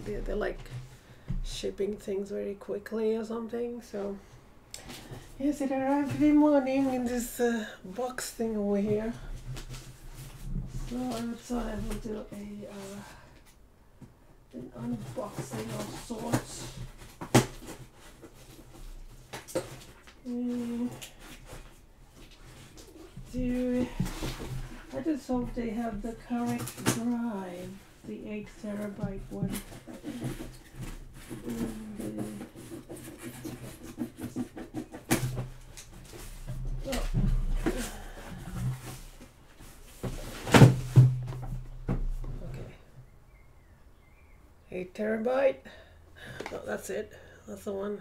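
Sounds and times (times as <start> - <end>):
package rustling and scraping: 14.8 - 41.6.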